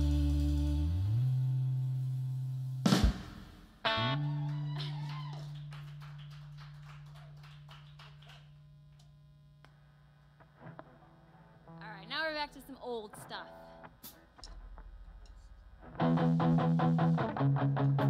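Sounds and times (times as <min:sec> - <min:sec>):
electric guitar chord: 0:16.0 - 0:18.0.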